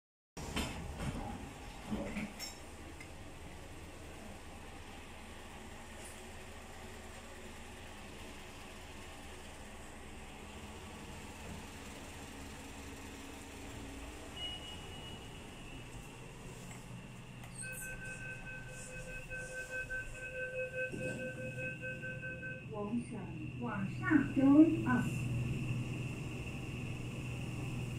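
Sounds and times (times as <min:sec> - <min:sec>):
lift low hum: 0:15.2 - 0:27.9
short electronic tone: 0:17.5 - 0:22.8
pulsing multi-pitch beep: 0:17.6 - 0:22.8.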